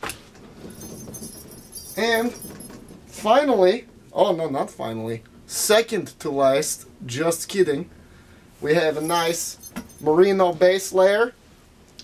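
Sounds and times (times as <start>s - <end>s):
rustling: 0.0s - 3.2s
metallic jingling and clinking: 0.6s - 3.0s, 8.9s - 10.2s.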